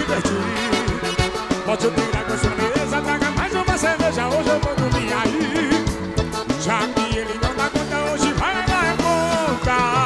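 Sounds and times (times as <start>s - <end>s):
live band music: 0.0s - 10.0s
steady drum beat: 0.0s - 10.0s.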